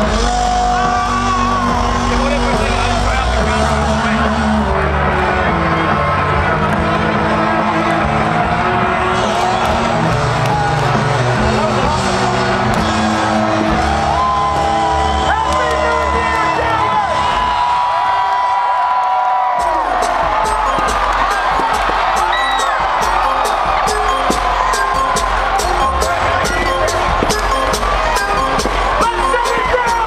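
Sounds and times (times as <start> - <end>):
dj music with sung vocals: 0.0 - 17.2, 19.5 - 30.0
crowd cheering and whooping: 0.0 - 30.0.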